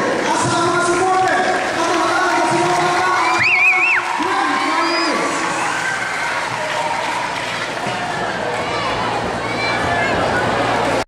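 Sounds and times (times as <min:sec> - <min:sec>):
audience applauding: 0:00.7 - 0:08.6.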